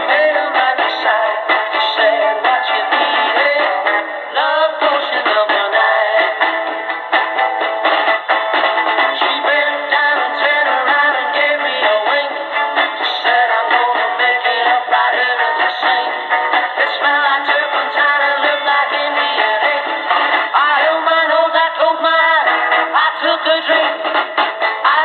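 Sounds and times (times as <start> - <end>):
song on am radio speaker: 0.0 - 25.0.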